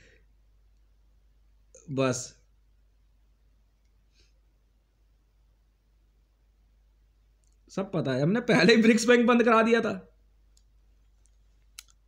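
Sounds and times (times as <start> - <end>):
faint clicks: 10.5 - 12.0.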